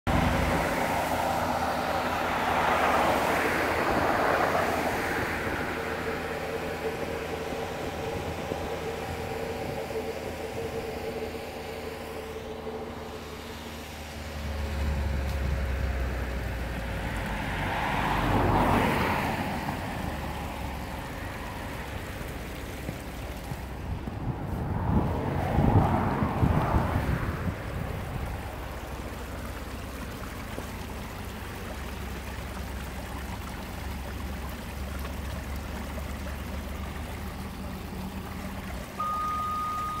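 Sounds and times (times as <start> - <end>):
engine hum: 0.0 - 40.0
passing road traffic: 0.0 - 40.0
wind on microphone: 23.6 - 28.6.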